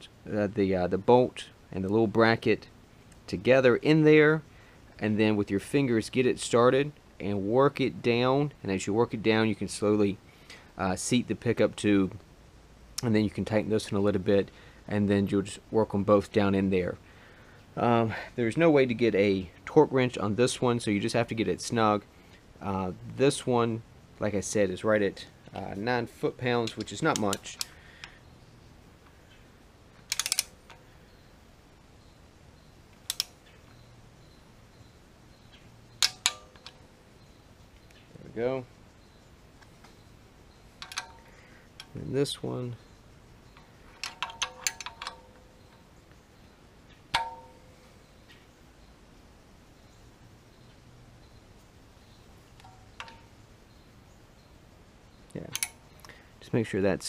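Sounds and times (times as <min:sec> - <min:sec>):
sharp metallic clicks with ring: 0:25.1 - 0:28.3, 0:30.0 - 0:31.2, 0:32.6 - 0:38.0, 0:39.6 - 0:48.5, 0:52.0 - 0:54.5, 0:55.1 - 0:56.2
metal socket clinking: 0:26.6 - 0:27.8, 0:30.0 - 0:30.8, 0:32.9 - 0:33.4, 0:35.9 - 0:36.8, 0:40.7 - 0:42.6, 0:43.4 - 0:45.8, 0:47.1 - 0:47.8, 0:52.6 - 0:53.4, 0:55.4 - 0:55.9
hand ratchet clicking: 0:30.0 - 0:30.8, 0:33.0 - 0:33.3, 0:40.8 - 0:42.0, 0:43.6 - 0:45.7, 0:55.5 - 0:55.8
soft metallic ping: 0:47.2 - 0:47.8.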